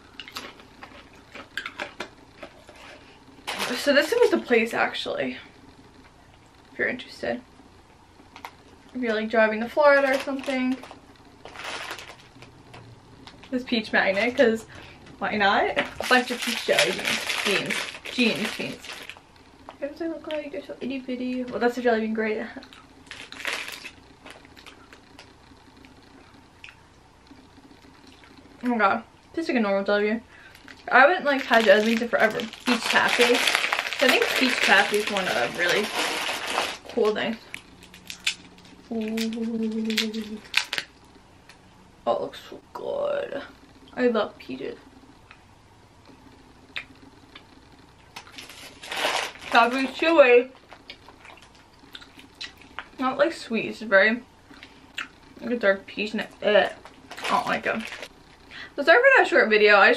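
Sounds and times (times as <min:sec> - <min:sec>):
chewing food: 0:50.6 - 0:53.0.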